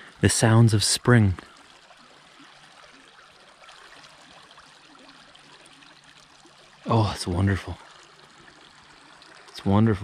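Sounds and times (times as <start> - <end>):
small creek trickling: 0.0 - 10.0.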